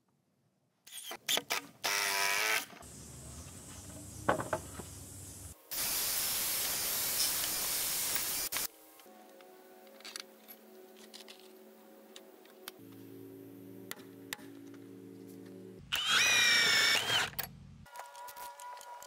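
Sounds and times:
cordless drill boring into wood: 0:01.0 - 0:02.7, 0:15.9 - 0:17.4.

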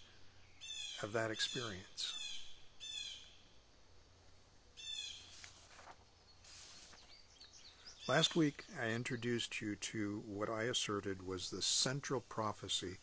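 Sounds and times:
soft hiss: 0:00.0 - 0:13.0.

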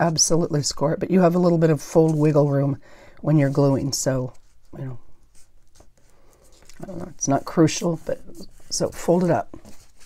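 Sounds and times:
woman speaking: 0:00.0 - 0:05.0, 0:06.8 - 0:09.6
paper rustling and creasing: 0:01.4 - 0:02.8, 0:03.4 - 0:10.0.

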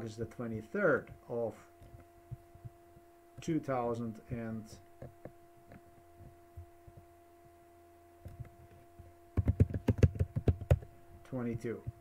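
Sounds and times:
steady hum: 0:00.0 - 0:12.0
typing on computer keyboard: 0:09.4 - 0:10.8.

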